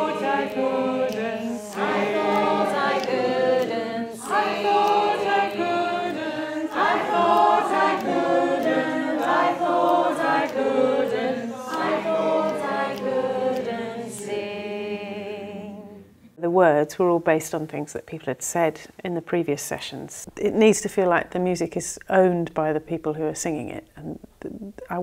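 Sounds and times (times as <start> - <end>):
choir singing a cappella: 0.0 - 16.3.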